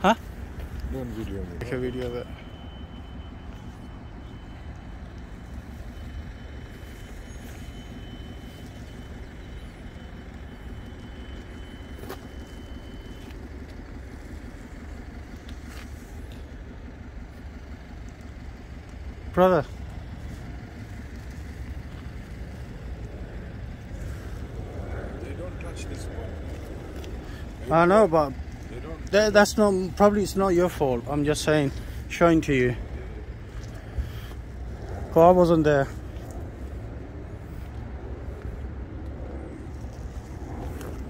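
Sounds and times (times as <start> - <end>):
outdoor background rumble: 0.0 - 41.0.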